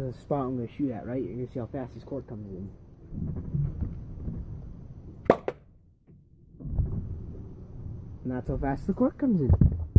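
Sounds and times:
toy cork gun pop: 5.2s - 5.7s.

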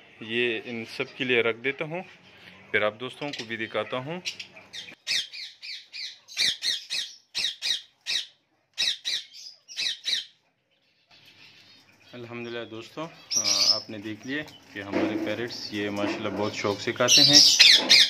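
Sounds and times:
parrots squawking: 3.2s - 12.2s, 12.9s - 14.0s, 15.0s - 18.0s.

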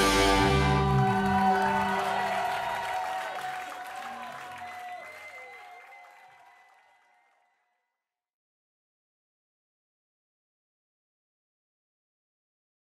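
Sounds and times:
electric guitars ringing chord: 0.0s - 2.3s.

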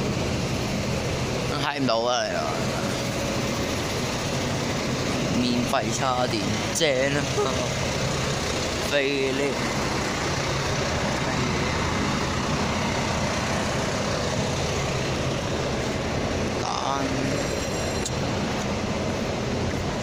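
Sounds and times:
diesel bus engines idling: 0.0s - 20.0s
traffic noise: 0.0s - 20.0s.

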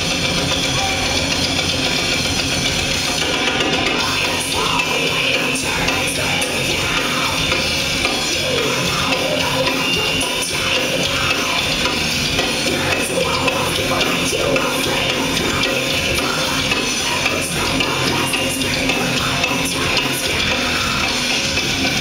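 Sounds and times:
bass guitar: 0.0s - 22.0s
distorted electric guitar: 0.0s - 22.0s
drums: 0.0s - 22.0s.

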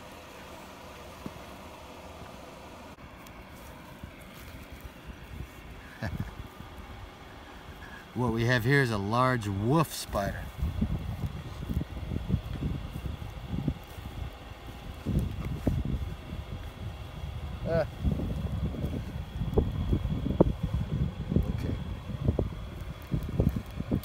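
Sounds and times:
hands rustling in dry grass: 0.0s - 24.0s
low rumble: 10.0s - 24.0s.

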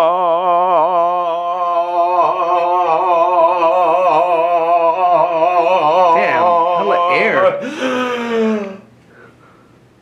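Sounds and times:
man singing held note with vibrato: 0.0s - 8.9s.

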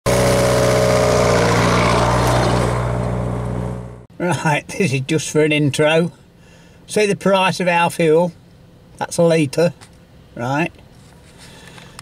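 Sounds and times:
tractor engine running: 0.1s - 4.1s.

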